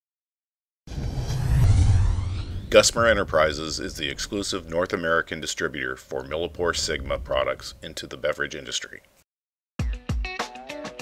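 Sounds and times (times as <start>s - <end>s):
deep rumbling whoosh: 0.9s - 5.3s.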